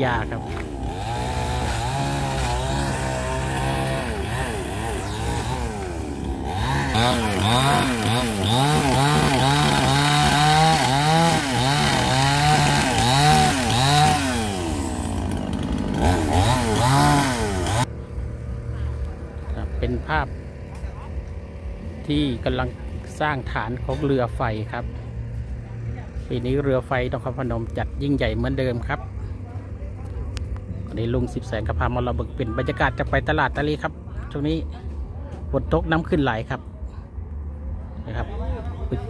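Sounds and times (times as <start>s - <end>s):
chainsaw cutting bamboo: 0.0s - 28.8s.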